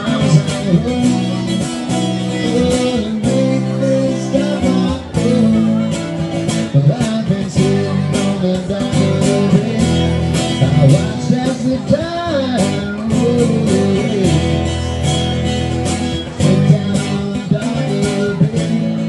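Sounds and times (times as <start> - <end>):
electric-acoustic guitar strumming: 0.0 - 19.0.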